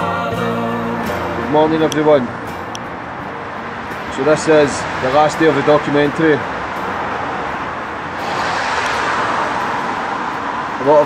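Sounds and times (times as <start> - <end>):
road traffic with tyre hiss: 0.0 - 11.0
vehicle passing: 0.4 - 11.0.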